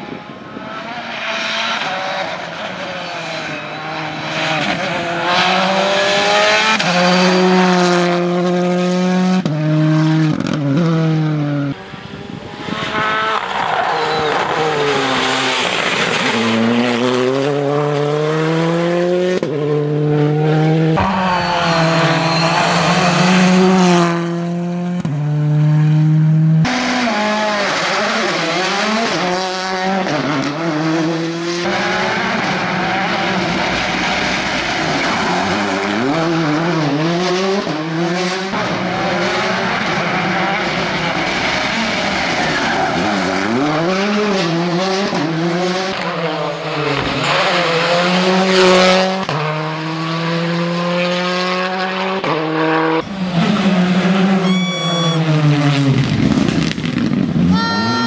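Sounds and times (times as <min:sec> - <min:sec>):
rally car engine revving past: 0:00.6 - 0:54.4.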